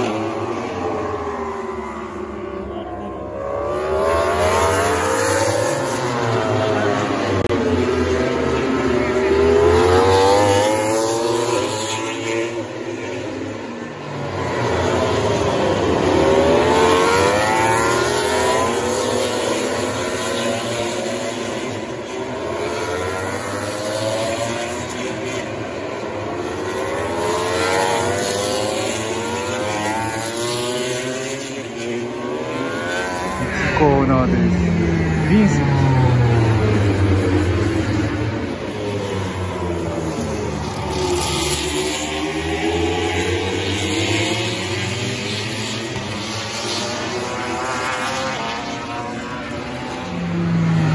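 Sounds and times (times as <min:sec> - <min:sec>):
racing motorcycle engines: 0:00.0 - 0:50.9.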